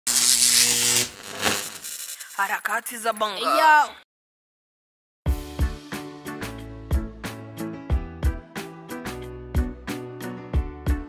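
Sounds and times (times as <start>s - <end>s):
loud electric buzz: 0.0s - 2.3s.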